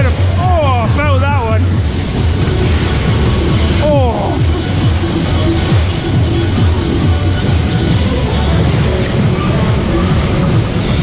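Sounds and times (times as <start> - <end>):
loud fairground music with singing: 0.0 - 11.0
low rumble of dodgem ride: 0.0 - 11.0.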